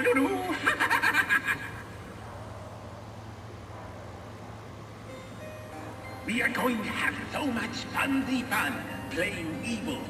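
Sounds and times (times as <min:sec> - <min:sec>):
low steady hum: 0:00.0 - 0:10.0
quiet music from a speaker: 0:02.0 - 0:10.0.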